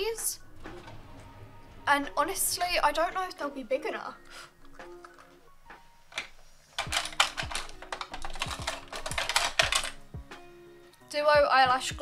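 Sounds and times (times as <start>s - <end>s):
faint background music: 0.0s - 12.0s
make-up items clicking and rattling: 4.6s - 5.5s, 6.1s - 10.3s.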